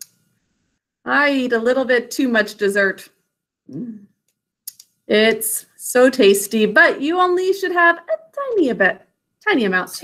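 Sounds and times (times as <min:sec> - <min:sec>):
quick clicks: 0:04.2 - 0:05.0.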